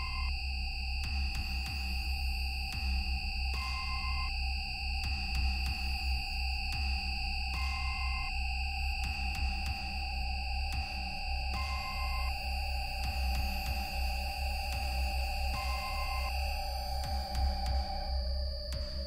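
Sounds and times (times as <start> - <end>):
deep pulsing low drone: 0.0 - 19.0.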